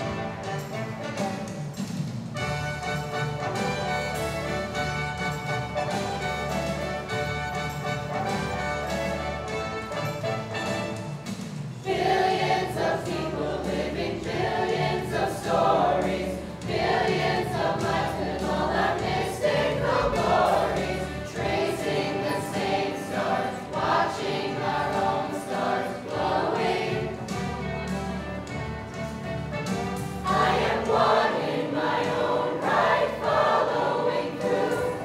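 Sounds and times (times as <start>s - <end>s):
choir singing: 11.8s - 28.1s, 30.2s - 35.0s.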